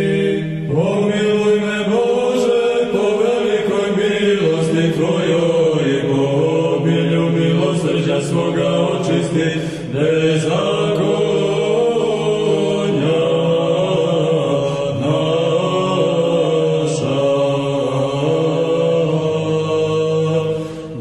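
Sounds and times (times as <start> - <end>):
voices chanting slow melody: 0.0 - 21.0.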